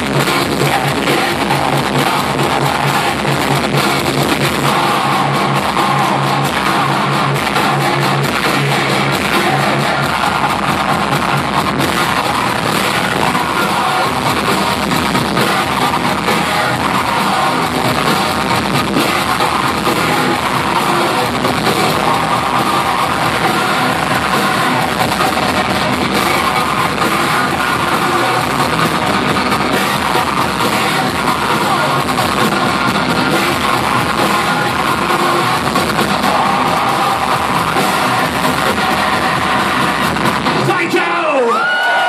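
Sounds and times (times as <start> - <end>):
heavy metal band playing loud: 0.0 - 42.0.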